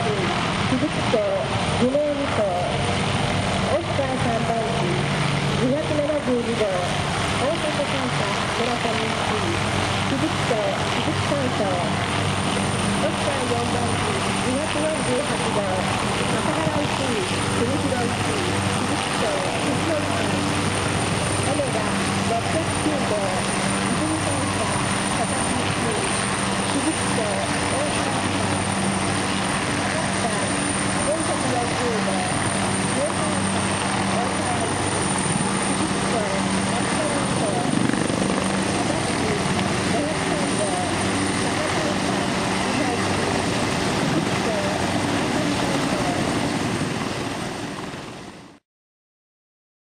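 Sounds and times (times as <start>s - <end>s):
helicopter rotor and turbine noise: 0.0s - 48.6s
spectators chattering: 3.6s - 47.2s.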